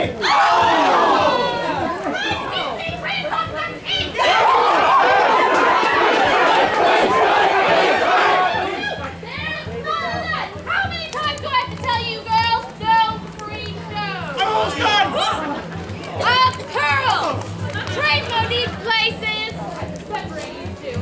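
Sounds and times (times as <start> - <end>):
crowd chattering: 0.0 - 21.0.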